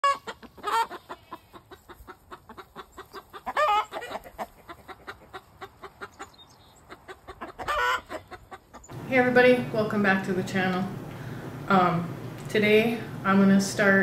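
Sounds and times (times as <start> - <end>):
loud wavering chicken squawks: 0.0 - 6.3, 6.9 - 8.9
chickens clucking: 0.0 - 11.7.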